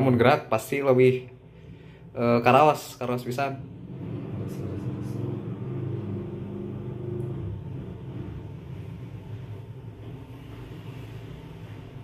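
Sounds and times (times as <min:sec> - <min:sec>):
low motor hum: 0:00.7 - 0:12.0.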